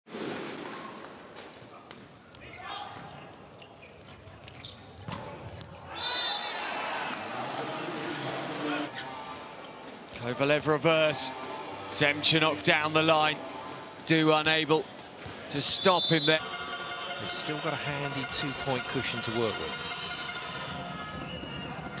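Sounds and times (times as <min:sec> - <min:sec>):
crowd noise: 0:00.6 - 0:22.0.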